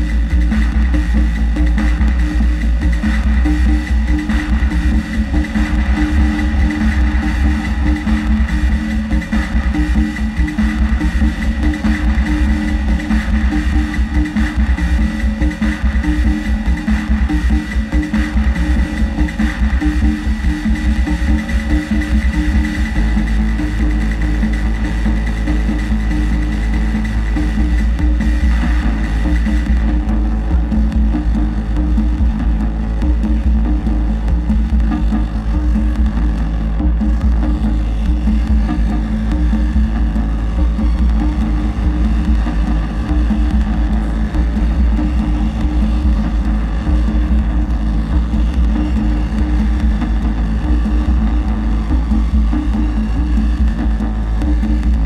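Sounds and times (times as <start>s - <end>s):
heavy droning synth bass: 0.0s - 55.0s
pulsing mid-range synth tones: 0.0s - 55.0s
steady high tone: 2.6s - 25.2s.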